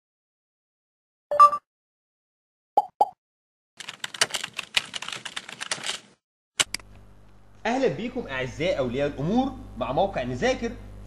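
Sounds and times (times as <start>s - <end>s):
computer keyboard typing: 3.8s - 6.8s.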